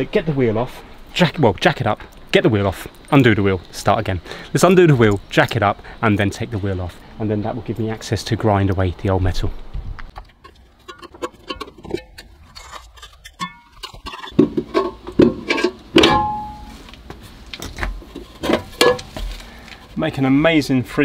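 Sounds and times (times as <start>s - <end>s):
metal clicks and knocks of hubcap: 10.2s - 16.6s
sharp metal clank with ring: 16.0s - 16.7s.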